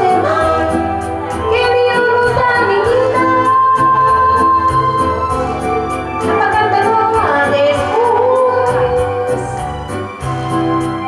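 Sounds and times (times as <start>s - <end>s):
woman singing into a microphone: 0.0s - 5.6s, 6.2s - 9.9s
backing music with beat and bass: 0.0s - 11.0s.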